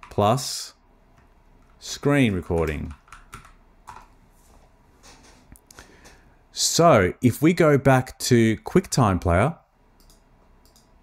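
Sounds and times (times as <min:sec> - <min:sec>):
keyboard keystrokes: 0:02.2 - 0:04.1.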